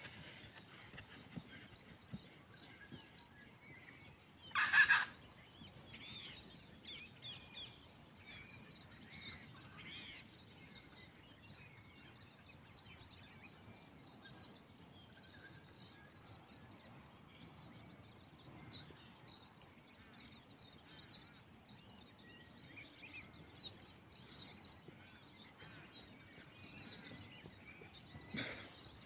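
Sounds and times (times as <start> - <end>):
wild birds chirping: 0.0 - 29.0
loud rapidly pulsed bird call: 4.5 - 5.2.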